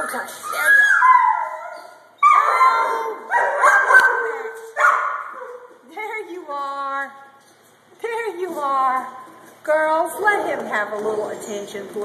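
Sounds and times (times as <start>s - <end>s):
puppy barking: 2.2s - 5.7s.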